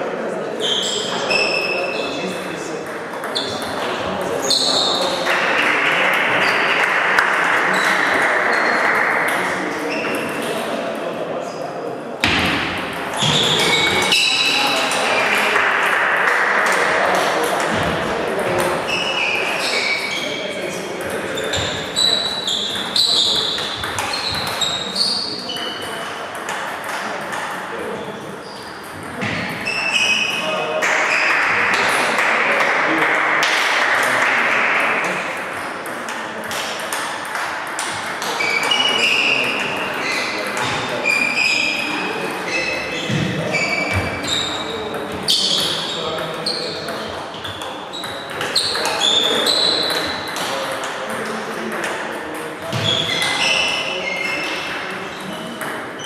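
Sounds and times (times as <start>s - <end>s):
shoe squeaks on sports floor: 0.6s - 2.2s, 4.4s - 5.1s, 9.9s - 10.3s, 13.1s - 15.0s, 18.9s - 20.6s, 21.3s - 26.0s, 28.0s - 30.5s, 38.3s - 50.6s, 52.7s - 56.0s
table tennis balls clicking: 21.0s - 24.8s.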